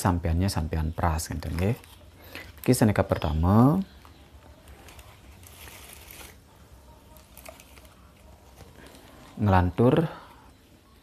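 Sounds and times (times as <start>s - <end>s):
cellophane rustling: 4.6s - 6.5s, 7.1s - 9.4s.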